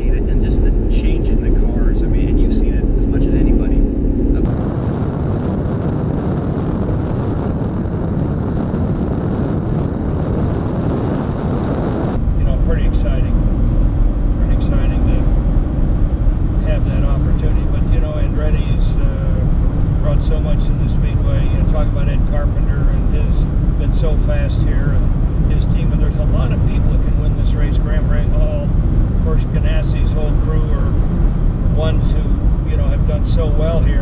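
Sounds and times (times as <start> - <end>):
car engine inside cabin: 0.0 - 34.0
road noise: 0.0 - 34.0
wind rushing past car: 0.0 - 34.0.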